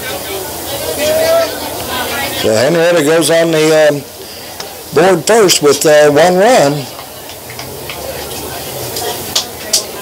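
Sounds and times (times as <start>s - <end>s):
faint distant voices: 0.0s - 10.0s
steady hiss: 0.0s - 10.0s.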